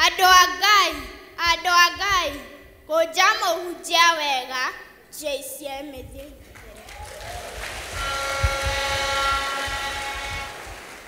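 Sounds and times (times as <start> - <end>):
pitched hum with overtones: 7.9 - 10.8.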